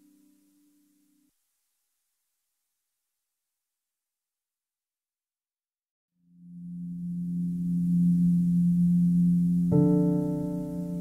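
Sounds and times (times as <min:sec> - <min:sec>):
slow ambient music: 0:06.3 - 0:11.0.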